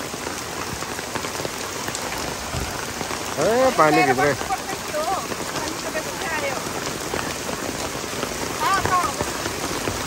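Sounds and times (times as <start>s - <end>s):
heavy rain on pavement and umbrellas: 0.0s - 10.0s.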